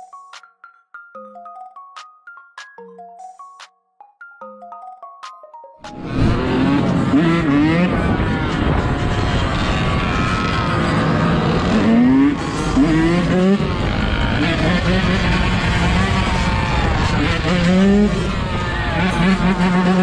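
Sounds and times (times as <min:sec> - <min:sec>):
dirt bike engine revving: 0:05.9 - 0:20.0.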